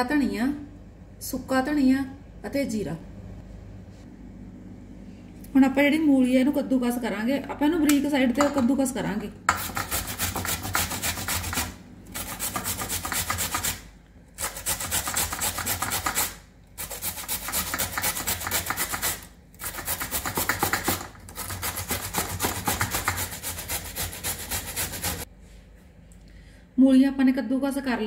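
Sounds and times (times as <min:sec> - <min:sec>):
radish grated on metal grater: 0:09.5 - 0:13.8, 0:14.4 - 0:25.3.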